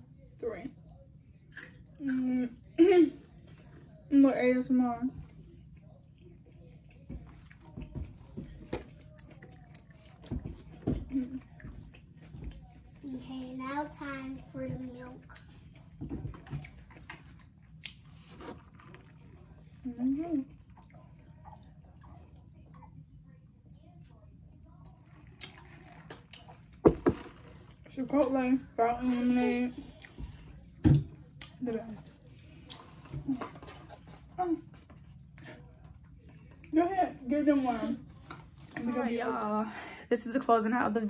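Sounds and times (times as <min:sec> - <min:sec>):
person chewing food: 0:05.3 - 0:13.0, 0:15.1 - 0:22.5, 0:25.0 - 0:27.9, 0:32.2 - 0:36.7.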